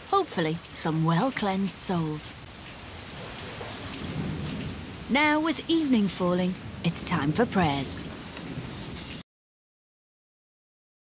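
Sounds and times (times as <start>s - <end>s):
steady rain: 0.0s - 9.2s.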